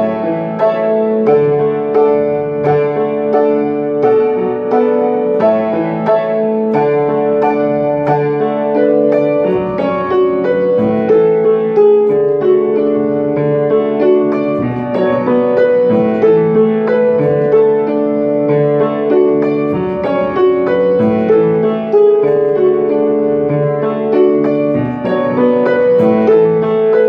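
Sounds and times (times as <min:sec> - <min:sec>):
grand piano chords and melody: 0:00.0 - 0:27.0.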